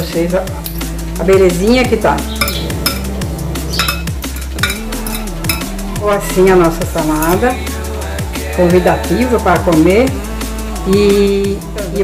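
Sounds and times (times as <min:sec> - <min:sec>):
fork and spoon clinking glass bowl: 0:02.3 - 0:05.8.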